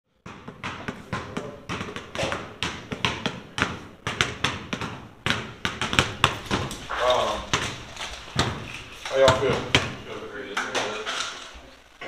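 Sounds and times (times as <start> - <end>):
basketball bouncing on hard floor: 0.2 - 11.2.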